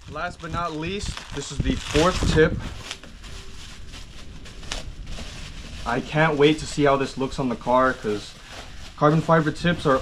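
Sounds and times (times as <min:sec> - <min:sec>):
bubble wrap rustling and crinkling: 0:00.0 - 0:10.0
man's voice: 0:05.9 - 0:08.4, 0:09.0 - 0:10.0.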